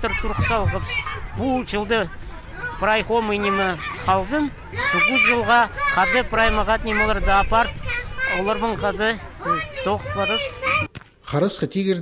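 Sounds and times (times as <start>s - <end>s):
man speaking: 0.0s - 10.6s.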